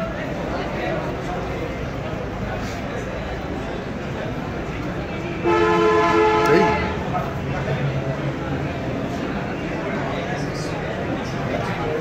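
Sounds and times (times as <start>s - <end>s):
two-tone horn blast: 5.4s - 7.1s.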